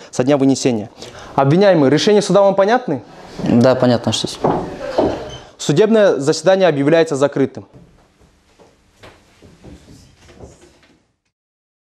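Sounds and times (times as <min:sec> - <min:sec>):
faint knocks and thuds: 0:04.3 - 0:05.4, 0:07.7 - 0:11.0.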